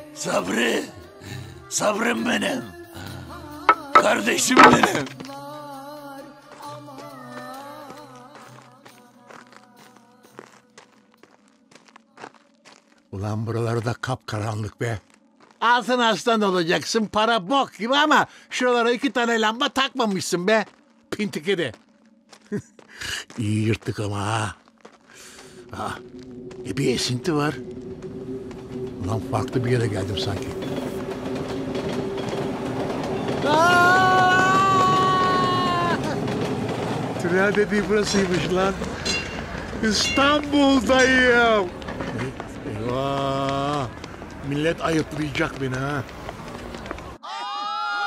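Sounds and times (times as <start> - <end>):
rail clatter: 3.7 - 5.2, 28.6 - 47.2
subway train rumble: 25.5 - 47.2.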